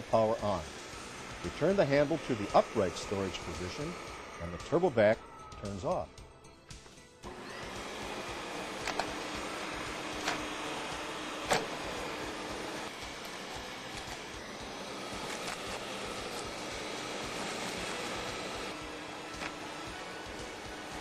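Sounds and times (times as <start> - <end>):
vacuum cleaner running over carpet: 0.0 - 6.0, 7.2 - 21.0
vacuum picking up debris clicks: 8.8 - 9.2.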